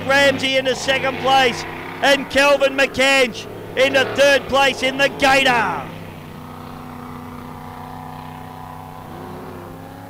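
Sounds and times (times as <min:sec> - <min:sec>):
powerboat engines droning: 0:00.0 - 0:10.0.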